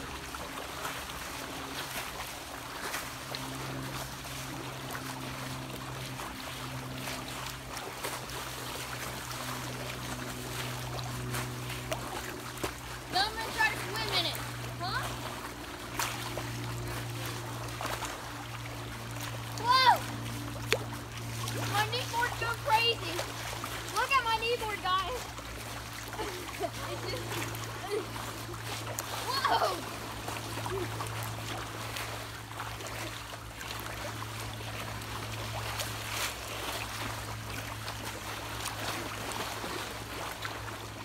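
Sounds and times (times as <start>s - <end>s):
pool water sloshing and splashing: 0.0s - 41.0s
steady low hum: 0.0s - 41.0s
child shouting: 19.6s - 20.0s.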